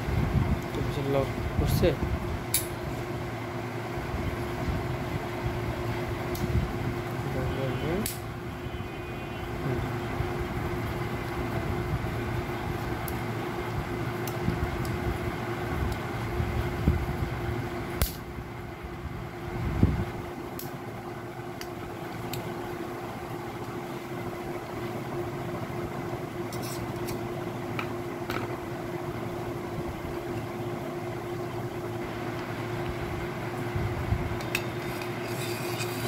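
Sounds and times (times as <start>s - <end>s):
mechanical hum: 0.0s - 36.0s.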